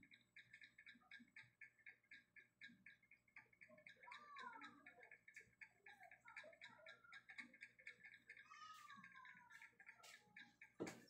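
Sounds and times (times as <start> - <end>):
rapid even ticking: 0.0 - 11.0.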